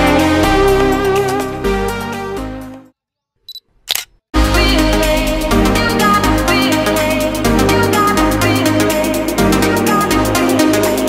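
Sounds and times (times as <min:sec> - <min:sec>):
background music: 0:00.0 - 0:02.9, 0:04.4 - 0:11.0
camera beep: 0:03.5 - 0:04.1
camera shutter click: 0:03.9 - 0:04.2
music with electronic beat: 0:04.4 - 0:11.0.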